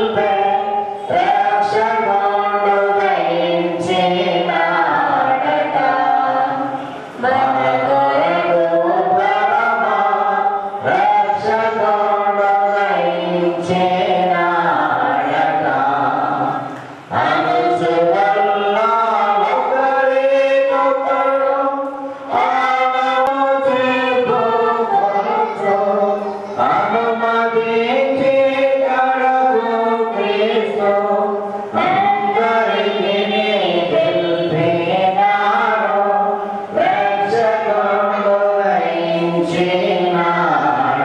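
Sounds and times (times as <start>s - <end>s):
group singing a hymn: 0.0s - 41.0s.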